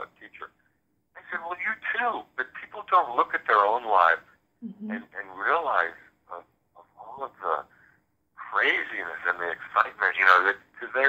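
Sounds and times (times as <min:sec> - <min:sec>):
person talking over phone line: 0:01.2 - 0:07.7, 0:08.4 - 0:11.0.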